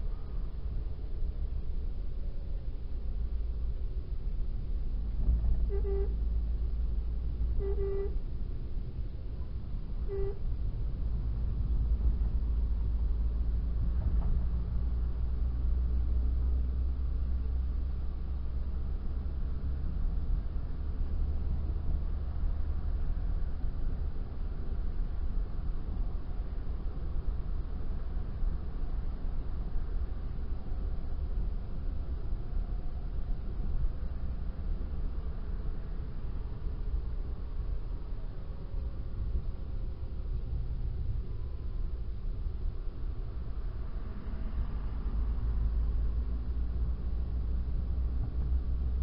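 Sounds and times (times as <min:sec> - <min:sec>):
car road and engine rumble: 0:00.0 - 0:49.0
car horn tooting: 0:05.7 - 0:06.1, 0:07.6 - 0:08.2, 0:10.0 - 0:10.4.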